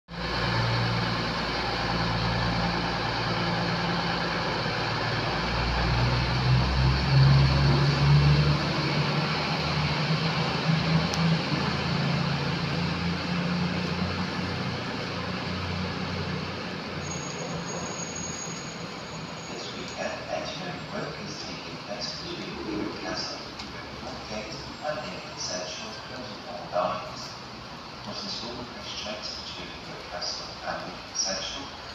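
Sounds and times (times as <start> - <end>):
diesel train departing: 0.1 - 31.9.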